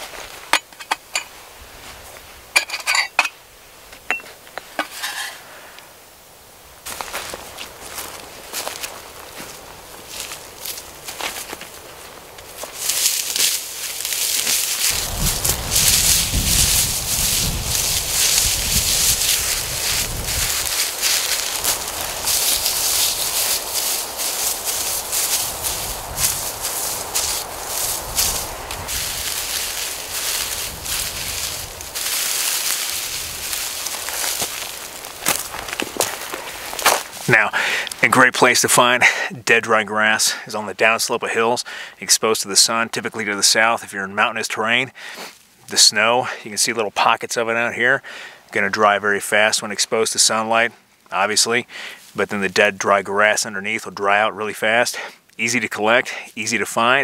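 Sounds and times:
footsteps on dry rocky slope: 0.0s - 5.4s, 6.8s - 39.3s
dry grass rustling: 0.0s - 39.0s, 48.4s - 54.8s.

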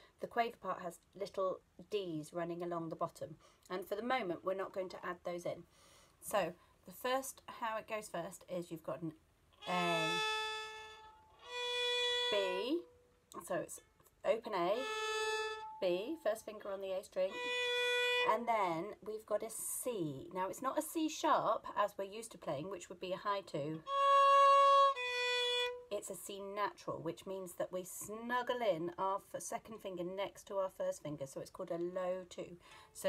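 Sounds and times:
violin long bowed notes: 9.6s - 13.0s, 14.4s - 18.5s, 23.8s - 25.9s.

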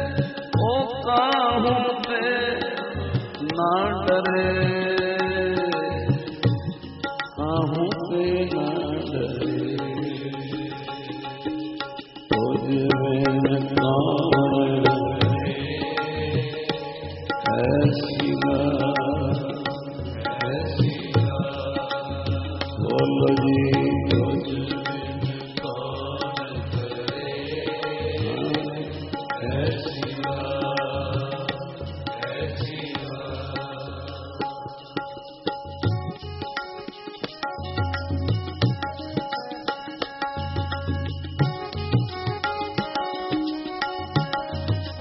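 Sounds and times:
harmonium chords: 0.0s - 45.0s
tabla strokes: 0.0s - 45.0s
person singing: 7.3s - 11.0s, 12.4s - 34.2s.

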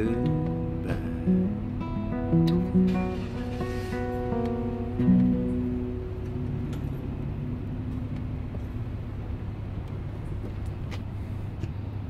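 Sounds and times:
acoustic guitar chord ringing: 0.0s - 9.4s
street traffic rumble: 0.0s - 12.0s.

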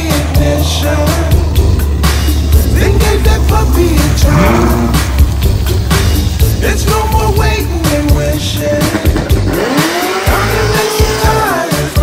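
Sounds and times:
car engine accelerating: 0.0s - 11.9s
music: 0.0s - 12.0s.

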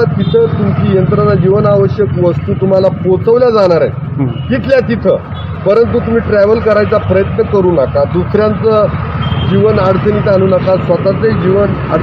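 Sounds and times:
man speaking: 0.0s - 12.0s
road traffic hum: 0.0s - 12.0s.

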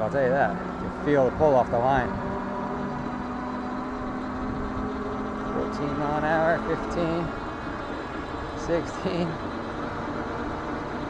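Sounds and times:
electric motor whining: 0.0s - 11.0s.

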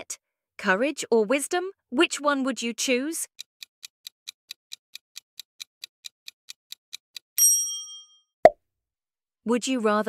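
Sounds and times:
clock ticking: 3.3s - 7.3s.

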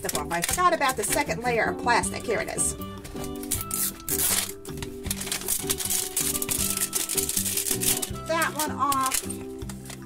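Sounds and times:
plastic film crinkling: 0.0s - 1.4s, 3.0s - 10.0s
background music: 0.0s - 10.0s.

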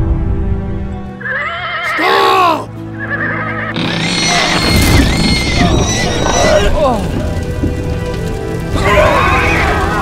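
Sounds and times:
fire crackling: 3.7s - 10.0s.

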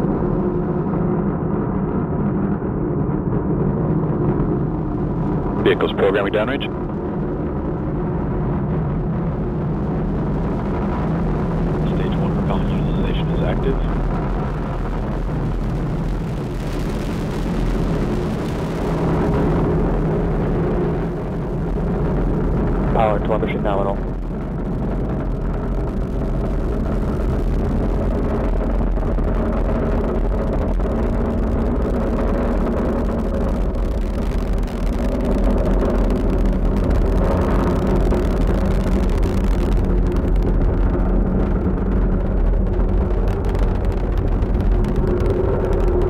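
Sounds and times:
rocket engines rumbling: 0.0s - 46.0s.

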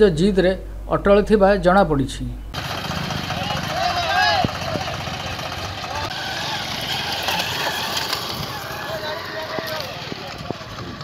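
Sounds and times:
vehicle engine running: 2.5s - 11.0s
people's voices: 3.1s - 11.0s.

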